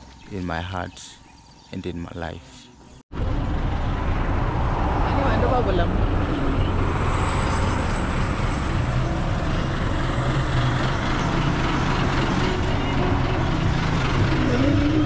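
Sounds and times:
diesel engine idling: 3.2 - 15.0.

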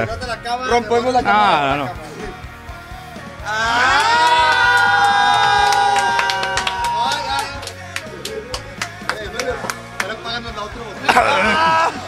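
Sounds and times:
hand claps: 4.2 - 10.2.

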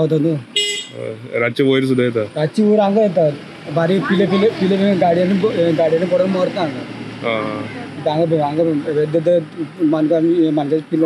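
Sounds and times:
man speaking: 0.0 - 11.0
vehicle horn toot: 0.6 - 1.0.

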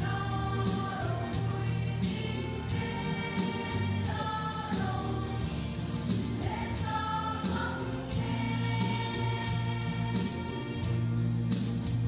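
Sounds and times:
mixed choir singing gospel: 0.0 - 12.0
steady bass accompaniment: 0.0 - 12.0.

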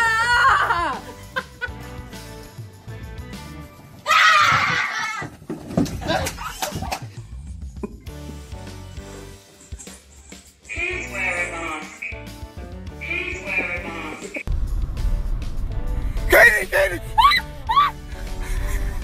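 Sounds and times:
person screaming: 0.0 - 1.0, 17.1 - 18.0
background music: 0.0 - 4.9, 5.8 - 19.0.

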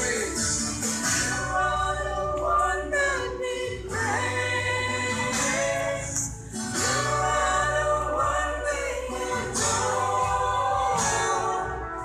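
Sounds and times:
congregation singing: 0.0 - 12.0.

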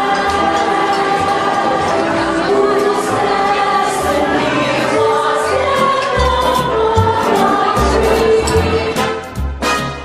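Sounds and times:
women's choir singing: 0.0 - 9.2.

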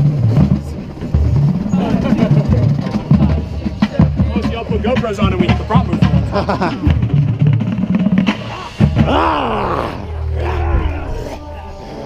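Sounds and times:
drum corps music: 0.0 - 11.6
people laughing and shouting: 1.6 - 7.3, 8.3 - 12.0.

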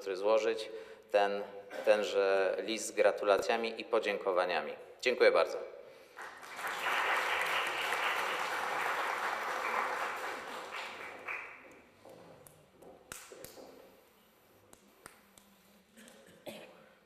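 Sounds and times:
audience applauding: 6.2 - 11.9.

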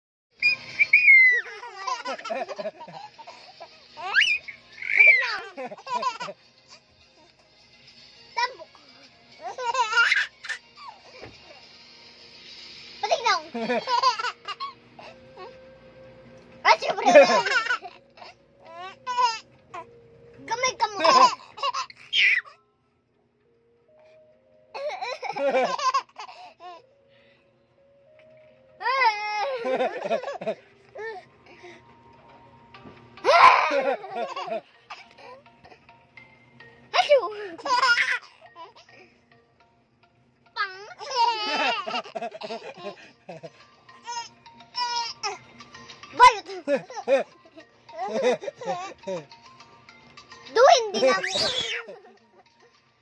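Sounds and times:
baby squealing: 0.4 - 2.0, 4.0 - 5.5, 21.7 - 22.6, 51.0 - 52.0
baby laughing: 0.4 - 6.8, 9.4 - 11.0, 13.6 - 15.5, 16.8 - 19.9, 20.8 - 22.6, 24.7 - 26.8, 28.8 - 31.2, 33.2 - 35.4, 37.0 - 38.9, 40.6 - 49.3, 50.9 - 52.3.

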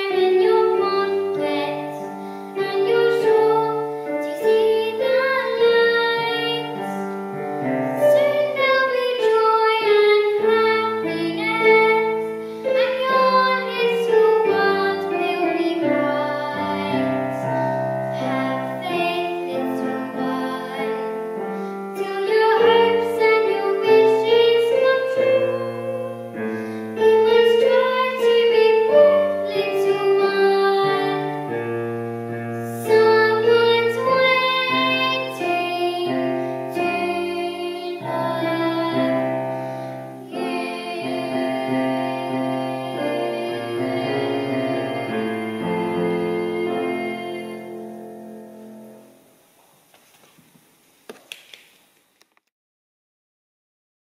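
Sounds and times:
girl singing: 0.0 - 7.0, 8.0 - 31.6, 32.6 - 39.4, 40.2 - 48.2
keyboard accompaniment: 0.0 - 49.5.

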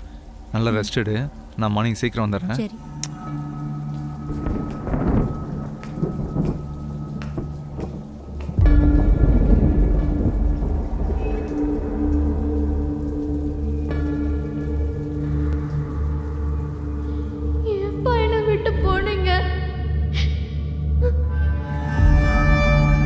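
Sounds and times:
rain: 0.0 - 19.5
low music drone: 0.0 - 23.0
thunder crack and rumble: 4.2 - 19.1.

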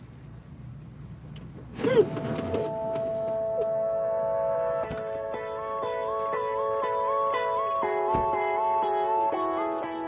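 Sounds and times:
soft music with held notes: 2.2 - 10.0.

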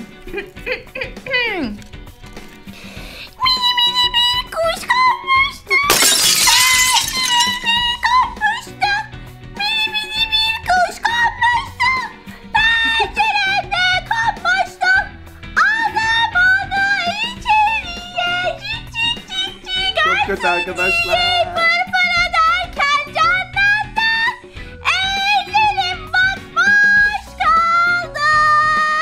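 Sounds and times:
glass shattering effect: 5.9 - 8.0.

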